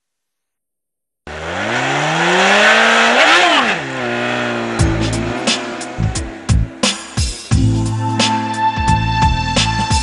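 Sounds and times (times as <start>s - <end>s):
motorcycle engine accelerating: 1.3s - 7.8s
music drum beats: 4.5s - 10.0s.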